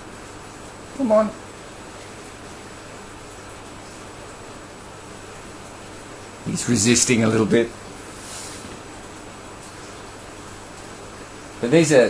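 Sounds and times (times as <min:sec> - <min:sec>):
low room noise hiss: 0:00.0 - 0:12.0.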